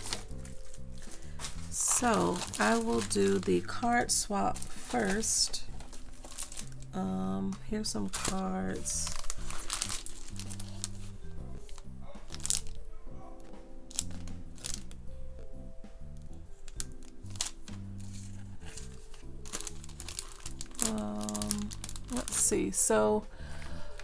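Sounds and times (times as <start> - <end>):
plastic card sleeves crinkling: 0.0 - 15.0, 16.2 - 22.9
soft background music: 0.0 - 24.0.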